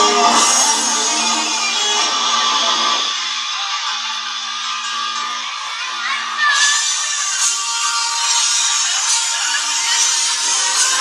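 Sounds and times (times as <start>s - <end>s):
children's choir singing: 0.0s - 3.1s
guitar accompaniment: 0.0s - 3.1s.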